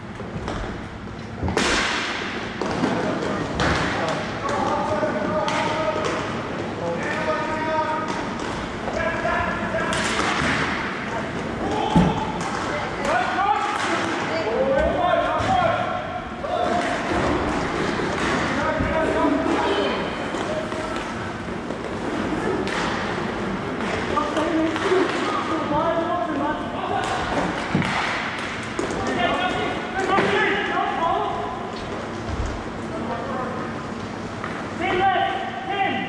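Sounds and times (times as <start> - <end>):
sticks and puck knocking boards: 9.8 - 10.9, 27.0 - 29.2.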